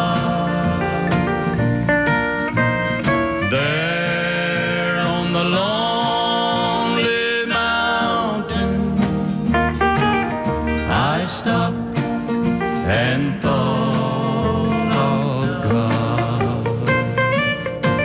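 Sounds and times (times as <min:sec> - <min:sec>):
acoustic guitar: 0:00.0 - 0:18.0
sliding steel guitar notes: 0:00.0 - 0:18.0.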